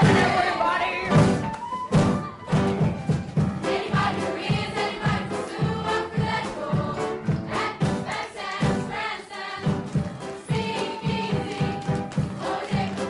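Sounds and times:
stage-show backing music: 0.0s - 13.0s
young voices singing in chorus: 3.6s - 9.8s, 10.4s - 13.0s.

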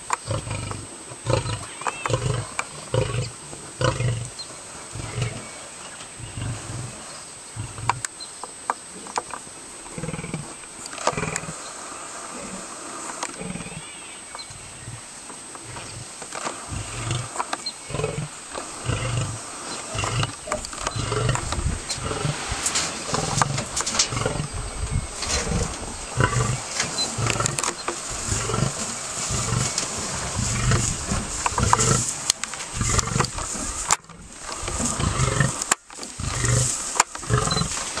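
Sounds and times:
lions snarling: 0.2s - 8.0s, 9.8s - 11.6s, 14.6s - 38.0s
lion grunting roars: 0.3s - 4.3s, 4.9s - 5.6s, 6.2s - 8.0s, 14.7s - 37.8s.

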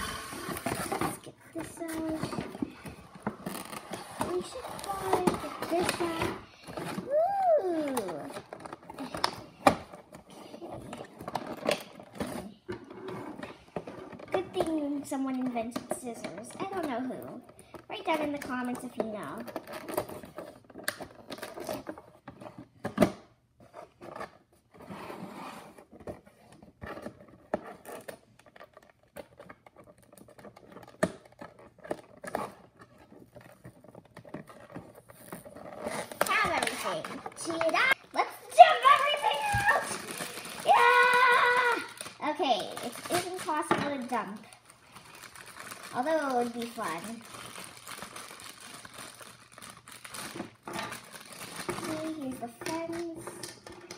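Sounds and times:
plastic crinkling: 0.0s - 12.6s, 26.0s - 53.9s.

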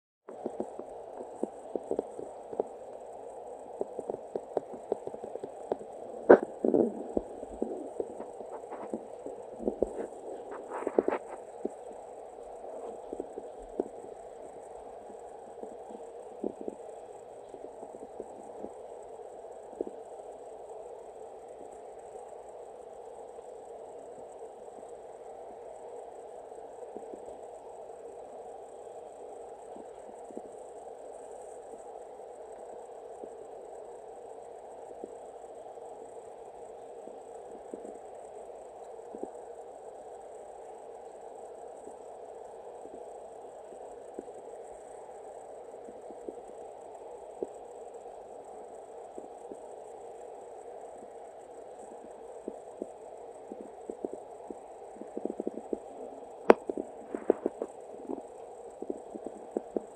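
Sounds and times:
cat purring: 4.1s - 11.8s.

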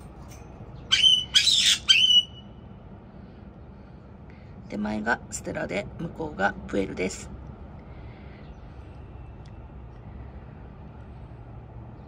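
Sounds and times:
parrot harsh squawks: 0.9s - 2.5s.

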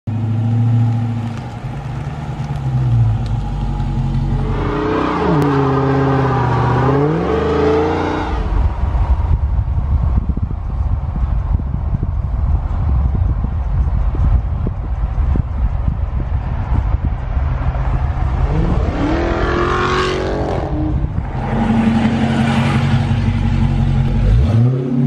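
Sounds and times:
car driving rumble: 0.1s - 25.0s
road and wind noise: 0.1s - 25.0s.

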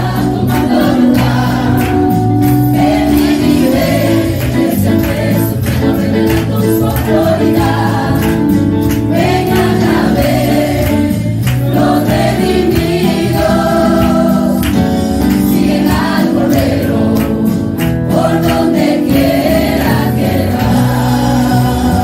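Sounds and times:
group singing a gospel hymn: 0.0s - 22.0s.

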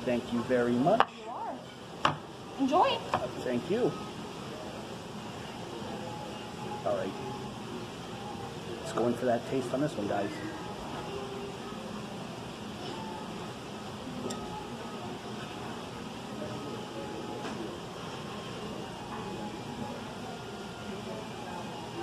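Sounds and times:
indistinct diners' voices: 0.0s - 22.0s
ventilation hum: 0.0s - 22.0s.

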